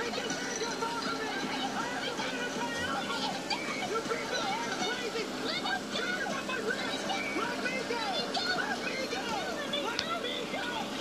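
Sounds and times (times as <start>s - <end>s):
voices shouting and squealing: 0.0s - 11.0s.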